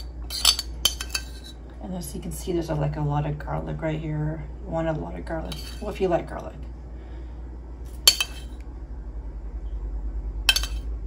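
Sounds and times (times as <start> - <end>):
metal spoon clinking against bowl: 0.3 - 1.5, 5.5 - 6.0, 7.9 - 8.6, 10.5 - 10.9.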